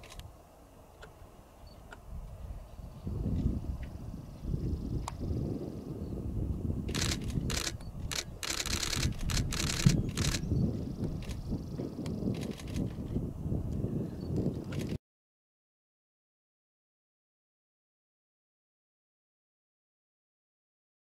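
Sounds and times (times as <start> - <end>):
wind buffeting microphone: 1.9 - 15.0.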